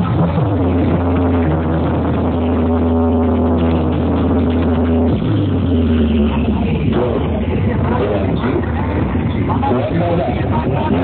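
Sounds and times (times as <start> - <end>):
electronic dance music: 0.0 - 11.0
steady bass: 0.0 - 11.0.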